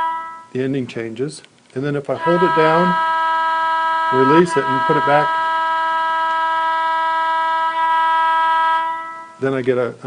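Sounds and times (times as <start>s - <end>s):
locomotive air horn chord: 0.0s - 0.6s, 2.1s - 9.9s.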